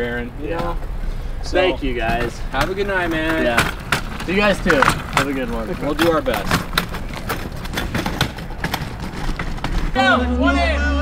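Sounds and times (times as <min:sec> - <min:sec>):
laundry cart casters clattering: 0:00.0 - 0:10.3.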